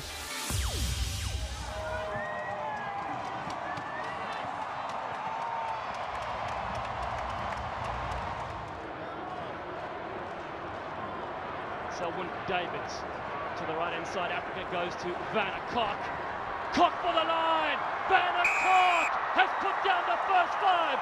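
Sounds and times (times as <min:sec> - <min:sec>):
crowd shouts: 0:01.7 - 0:06.2, 0:15.7 - 0:21.0
crowd clapping: 0:02.2 - 0:11.8
hubbub of many voices: 0:08.7 - 0:21.0.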